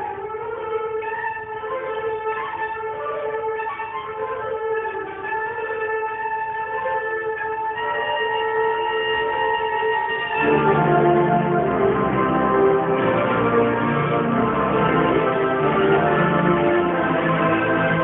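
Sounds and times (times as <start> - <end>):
marching band playing chords: 9.9 - 18.0.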